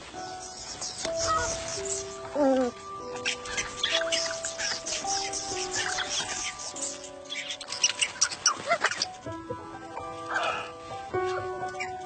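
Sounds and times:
background music held notes: 0.0 - 12.0.

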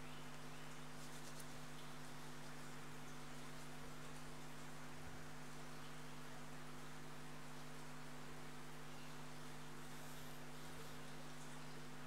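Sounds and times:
faint electrical hum: 0.0 - 12.0
low hiss: 0.0 - 12.0.

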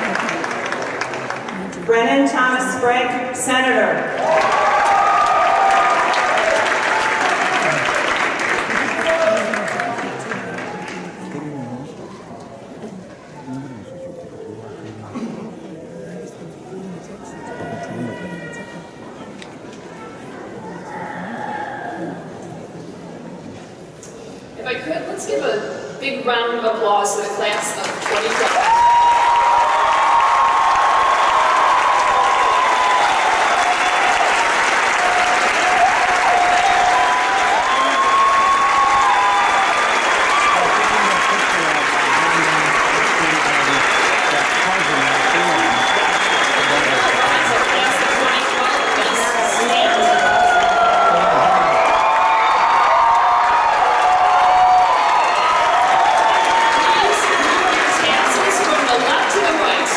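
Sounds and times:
audience applauding: 0.0 - 2.0, 4.1 - 13.6, 27.5 - 59.9
people cheering: 0.0 - 2.0, 4.0 - 15.0, 17.1 - 22.3, 27.9 - 59.9.

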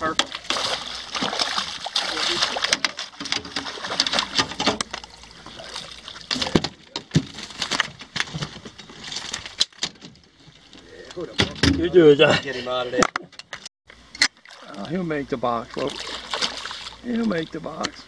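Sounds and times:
fish splashing at surface: 0.2 - 6.6, 15.7 - 17.0.

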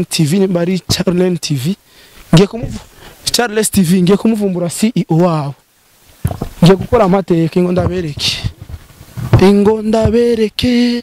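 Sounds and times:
man talking rapidly: 0.0 - 5.6, 6.6 - 8.6, 9.3 - 11.0.

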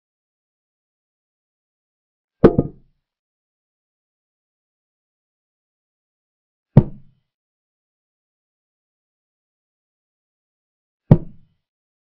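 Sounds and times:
short wooden knock: 2.4 - 2.8.

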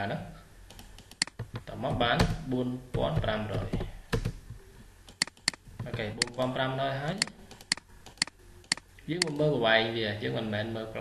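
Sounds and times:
computer keyboard keystrokes: 0.7 - 2.3, 5.1 - 6.4, 7.2 - 9.4.

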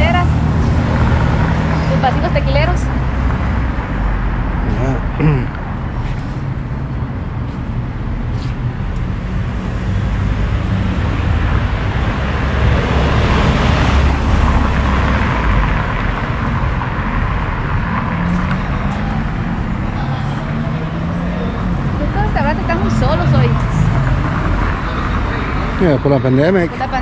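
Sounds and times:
street traffic rumble: 0.0 - 27.0
vehicle passing: 0.0 - 27.0.

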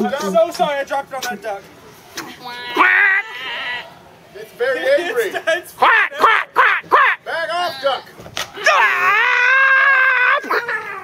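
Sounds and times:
person imitating angry duck: 2.6 - 3.8.

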